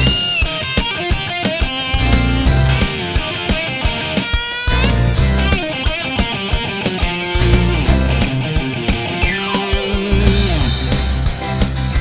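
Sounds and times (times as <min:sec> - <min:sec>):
guitar line gliding up: 0:00.0 - 0:11.2
rock band playing: 0:00.0 - 0:12.0.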